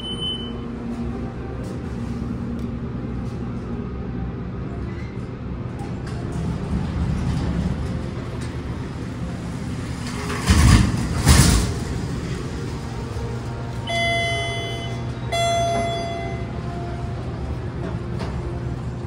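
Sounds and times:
elevator pump motor humming: 11.8 - 19.0
chime tones: 13.9 - 16.6.

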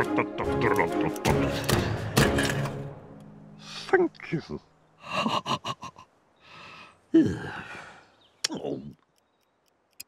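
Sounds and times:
man sighing: 6.4 - 8.1.

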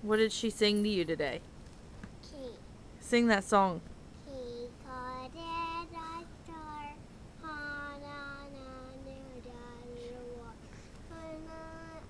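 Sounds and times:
boy singing: 4.3 - 12.0.

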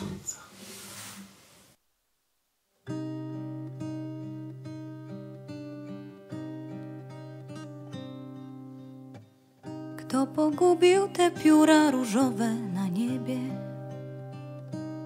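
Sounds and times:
acoustic guitar picking: 2.9 - 15.0.

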